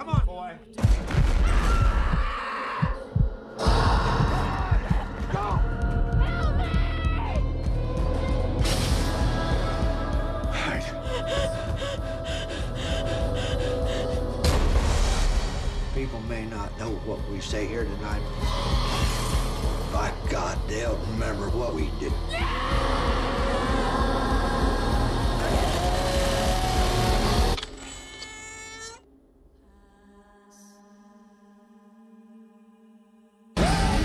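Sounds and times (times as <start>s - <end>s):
held tone of film score: 0.0s - 34.0s
person breathing hard: 10.8s - 14.4s.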